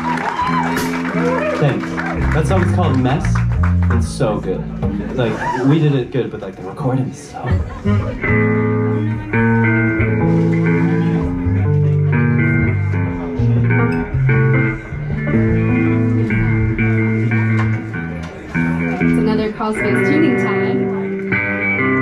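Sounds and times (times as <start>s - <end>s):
bass guitar notes: 0.0s - 6.4s, 7.3s - 22.0s
electric guitar noodling: 7.3s - 22.0s.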